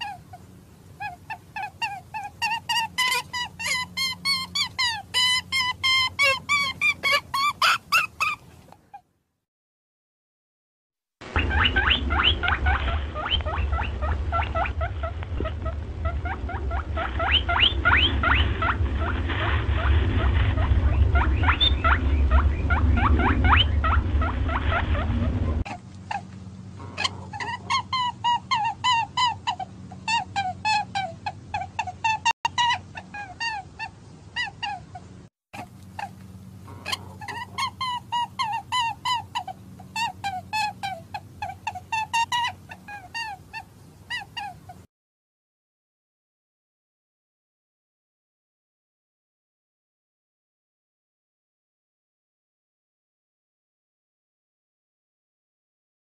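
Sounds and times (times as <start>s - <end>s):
small animals squeaking: 0.0s - 9.1s, 11.4s - 44.9s
repeated chirping calls: 1.0s - 8.5s, 11.4s - 15.1s, 16.0s - 18.8s, 20.8s - 24.9s
low rumble: 11.2s - 30.5s.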